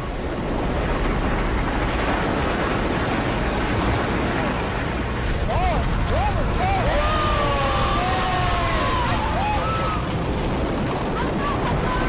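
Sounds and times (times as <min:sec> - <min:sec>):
glacier ice calving into sea: 0:00.0 - 0:12.0.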